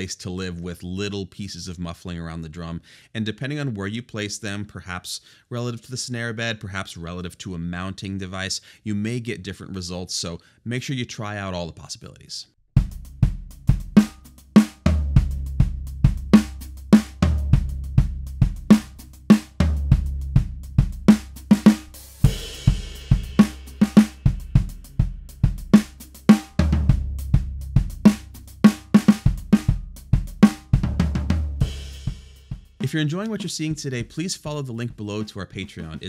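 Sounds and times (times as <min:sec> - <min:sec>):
drum kit groove: 0:12.8 - 0:36.0
cymbal crash: 0:21.7 - 0:26.6.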